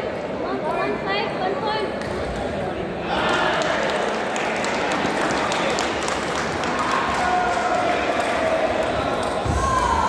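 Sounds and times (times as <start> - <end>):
voices in a sports hall: 0.0 - 10.0.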